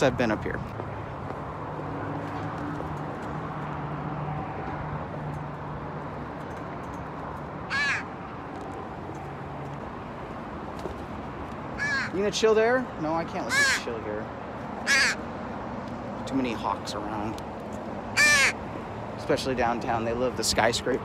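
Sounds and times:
crow cawing: 7.7 - 8.2, 11.8 - 12.2, 13.4 - 13.9, 14.8 - 15.3, 18.1 - 18.6.

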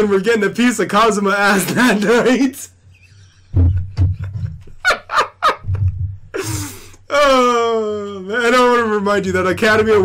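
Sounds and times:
men laughing: 1.5 - 7.5.

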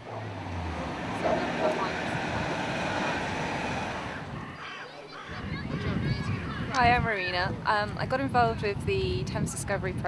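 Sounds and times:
engine roar: 0.0 - 4.6.

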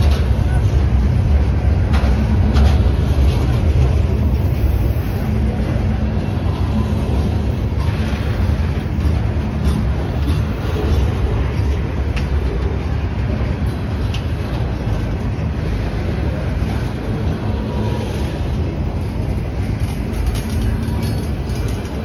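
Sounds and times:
freight train wheels rumbling on rail: 0.0 - 22.0.

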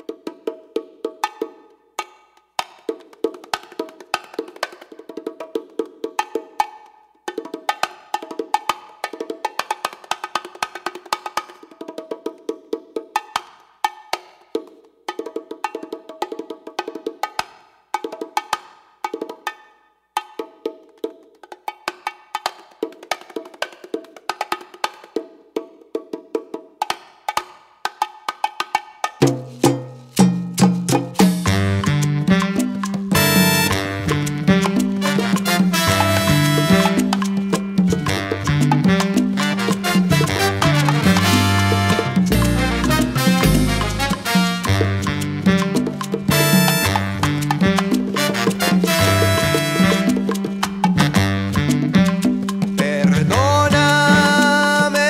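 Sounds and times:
bongo drums played by hand: 0.0 - 55.0
salsa band with bass: 29.2 - 55.0.

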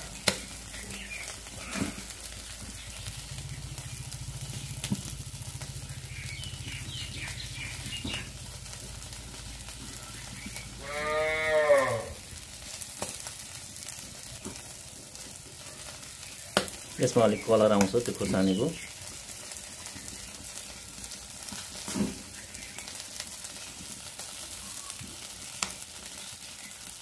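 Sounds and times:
chicken sizzling on a grill: 0.0 - 27.0
drawn-out call: 10.1 - 12.2.

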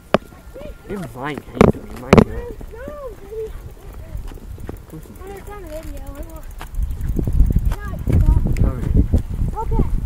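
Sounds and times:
boy's voice: 2.3 - 6.6, 7.6 - 10.0.

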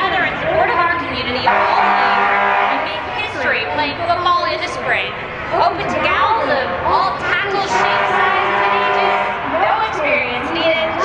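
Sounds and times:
crowd chatter: 0.0 - 11.0
car horn blast: 1.5 - 2.8, 7.7 - 9.5.

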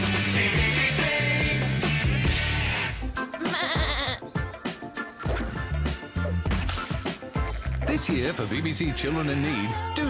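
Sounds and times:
upbeat music with pulsing bass: 0.0 - 10.0
sheep bleat: 3.3 - 4.3.

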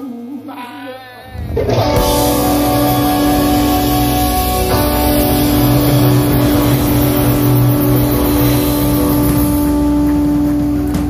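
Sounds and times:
bass guitar: 1.2 - 11.0
electric guitar sustained note: 1.3 - 11.0
drum cymbals wash: 2.0 - 11.0.

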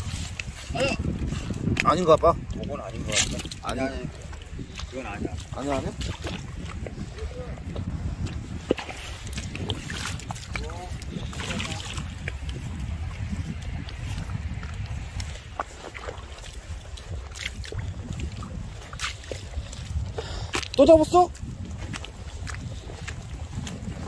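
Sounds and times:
footsteps splashing in mud: 0.0 - 24.0
wind rumbling on microphone: 0.0 - 24.0.

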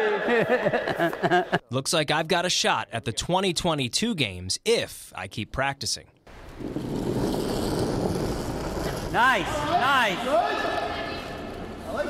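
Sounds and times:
curling stone sliding on ice: 6.3 - 12.0
brooms brushing ice: 6.5 - 12.0.

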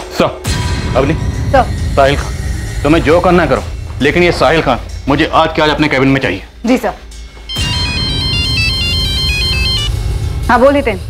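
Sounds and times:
low background music: 0.0 - 11.0
mobile phone ringtone: 7.5 - 10.1.

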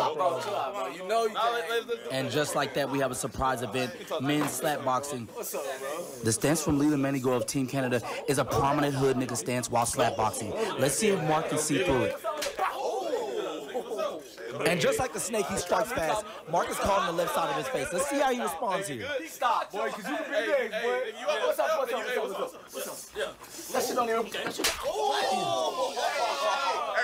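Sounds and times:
men calling out: 0.0 - 27.0
men's voices: 0.0 - 27.0
slap to the face: 24.4 - 24.9.

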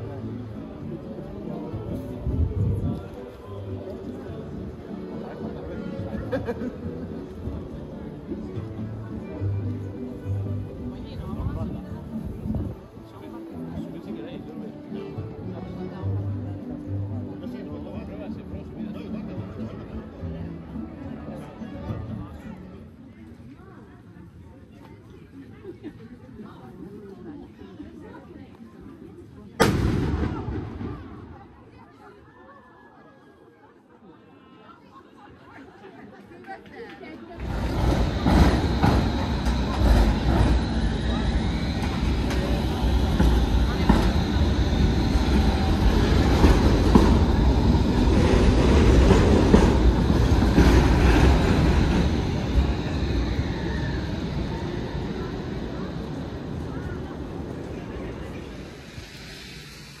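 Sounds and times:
street noise low rumble: 0.0 - 32.0, 37.3 - 60.0
distant crowd chatter: 0.0 - 60.0.

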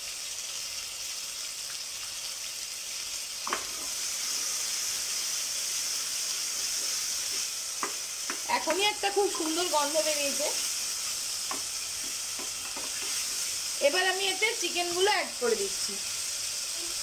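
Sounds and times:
vegetables sizzling in hot oil: 0.0 - 17.0.

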